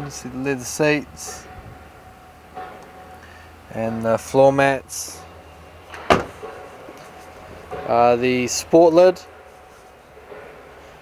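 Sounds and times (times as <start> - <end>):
car door slamming thud: 6.0 - 6.5.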